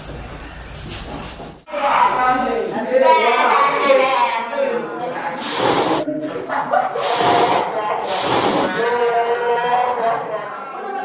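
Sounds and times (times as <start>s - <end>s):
short hissing bursts: 5.4s - 6.1s, 7.0s - 8.7s.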